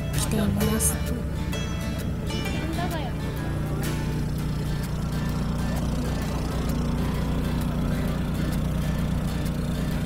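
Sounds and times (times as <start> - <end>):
generator engine humming: 0.0 - 10.0.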